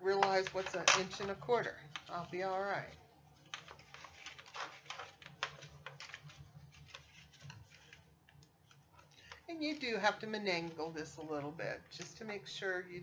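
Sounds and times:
paper scraping: 0:00.4 - 0:11.3.

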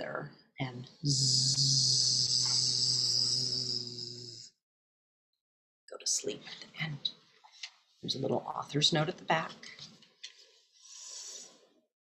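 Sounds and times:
woman making buzzing sound: 0:01.1 - 0:04.5.

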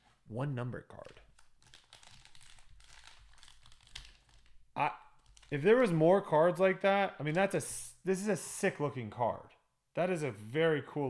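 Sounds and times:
foil wrapper crinkling: 0:01.3 - 0:04.6.

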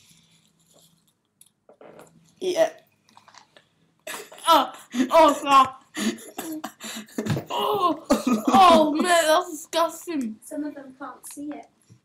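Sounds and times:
faint breathing: 0:05.9 - 0:07.2.

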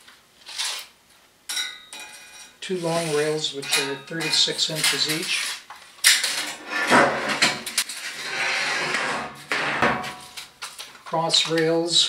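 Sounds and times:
metal scraping across bench: 0:02.2 - 0:10.4.

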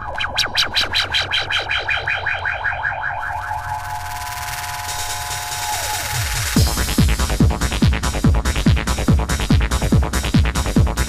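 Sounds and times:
synthesizer zaps falling in pitch: 0:00.1 - 0:07.4
low bass drone: 0:01.6 - 0:11.0.

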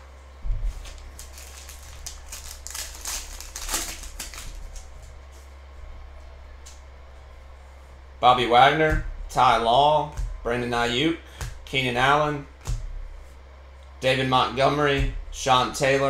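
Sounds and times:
low electrical hum: 0:00.0 - 0:16.0
foil pack crinkling: 0:00.8 - 0:05.0.

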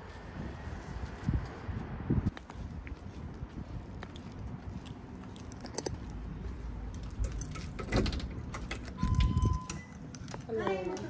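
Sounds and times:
footsteps: 0:00.0 - 0:07.6
short steady beep: 0:09.0 - 0:10.0.

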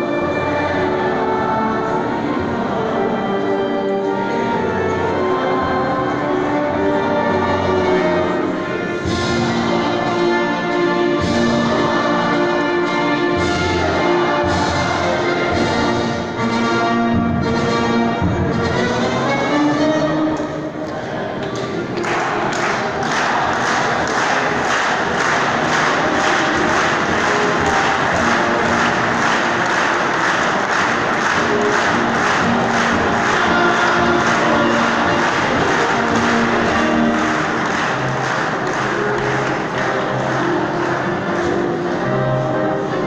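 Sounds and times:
anthem over loudspeakers: 0:00.0 - 0:43.0.

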